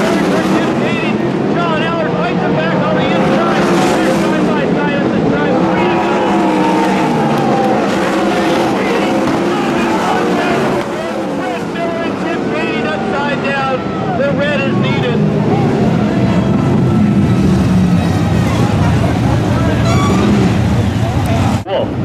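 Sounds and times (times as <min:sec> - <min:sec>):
racing car engines: 0:00.0 - 0:22.0.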